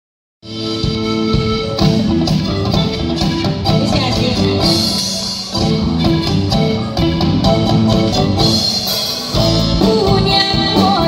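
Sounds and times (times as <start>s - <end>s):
live band playing instrumental: 0.4s - 11.0s.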